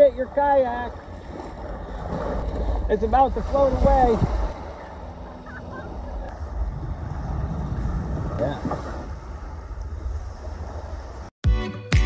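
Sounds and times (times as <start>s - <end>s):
small waves washing on sand: 0.0s - 11.3s
wind rumbling on microphone: 0.0s - 11.3s.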